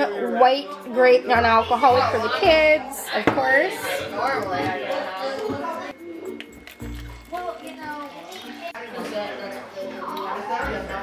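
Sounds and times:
juice pouring into plastic cup: 0:06.3 - 0:08.7.

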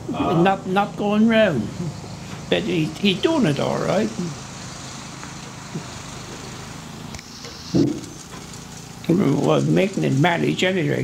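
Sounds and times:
small petrol engine running: 0:00.0 - 0:11.0.

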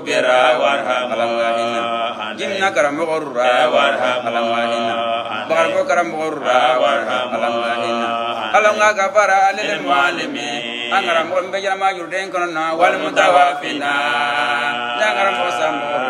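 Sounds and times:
man chanting melodic recitation: 0:10.7 - 0:16.0.

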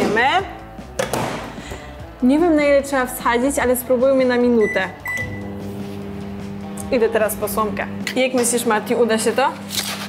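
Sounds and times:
microwave button beep: 0:04.6 - 0:05.5
microwave humming: 0:04.6 - 0:09.7.

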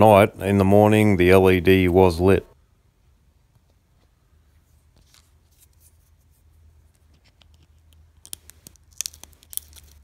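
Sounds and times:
plastic film crinkling: 0:08.2 - 0:10.0.

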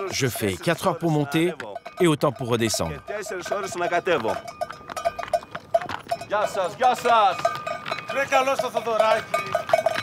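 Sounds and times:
man talking: 0:00.0 - 0:04.4, 0:06.3 - 0:07.5, 0:08.1 - 0:09.6
mule bells jangling: 0:00.0 - 0:10.0.

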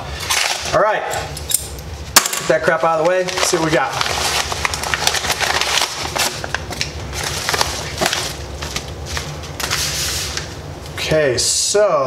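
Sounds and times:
bubble mailer crinkling: 0:02.8 - 0:10.6.

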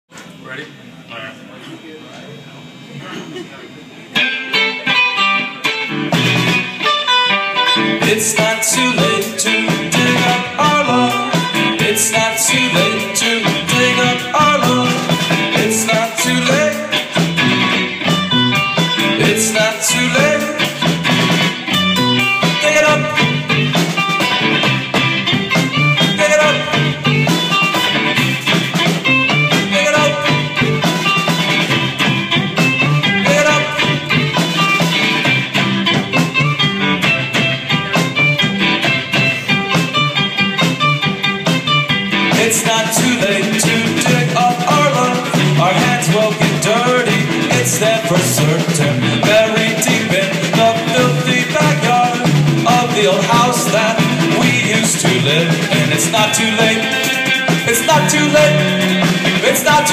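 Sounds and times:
electric guitars: 0:02.6 - 0:59.9
rock band playing live: 0:04.1 - 0:59.9
driving drums: 0:04.2 - 0:59.9.

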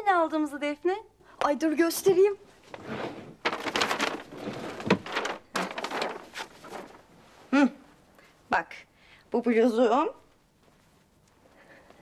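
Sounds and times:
clothes rustling: 0:02.5 - 0:07.6
drawer sliding open: 0:02.7 - 0:06.4.

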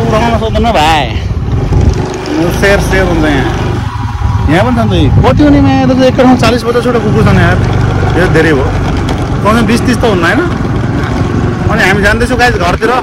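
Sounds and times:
men talking and calling out: 0:00.0 - 0:13.0
motorcycle engine running: 0:00.0 - 0:13.0
wind noise: 0:00.8 - 0:02.2, 0:03.6 - 0:06.5.

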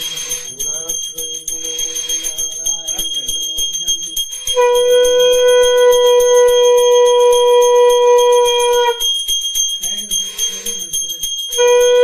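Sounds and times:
hand bell ringing rapidly: 0:00.0 - 0:12.0
conch shell blown: 0:04.4 - 0:09.3, 0:11.5 - 0:12.0.

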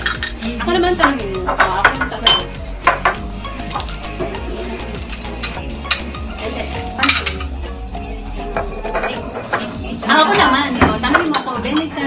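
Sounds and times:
dishes and cutlery clinking: 0:00.0 - 0:07.8, 0:08.5 - 0:12.0
background music: 0:00.0 - 0:12.0
voices: 0:00.3 - 0:12.0.

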